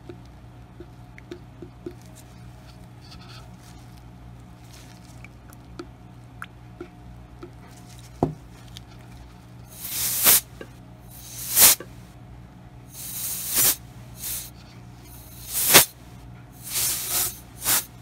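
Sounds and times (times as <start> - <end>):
canned air hissing blasts: 9.7 - 12.0, 12.9 - 16.0, 16.6 - 18.0.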